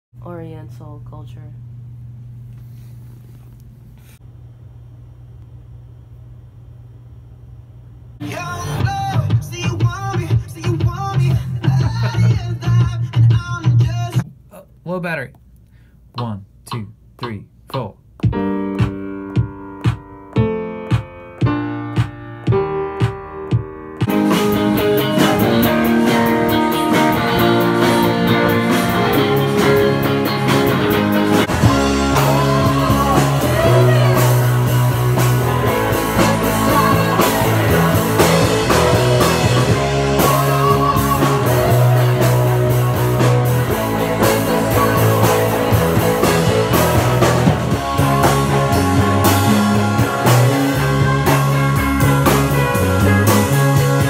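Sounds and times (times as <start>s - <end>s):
rock band rehearsing: 8.2s - 14.7s, 17.0s - 54.0s
low bass line: 18.2s - 54.0s.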